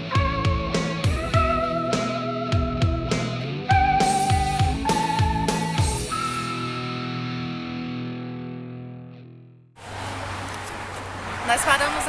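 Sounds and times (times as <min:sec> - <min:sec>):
distorted electric guitar chord: 0:00.0 - 0:09.1.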